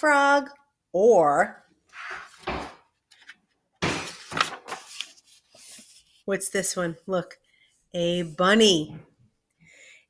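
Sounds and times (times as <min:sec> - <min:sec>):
book pages rustling: 0:01.9 - 0:06.4.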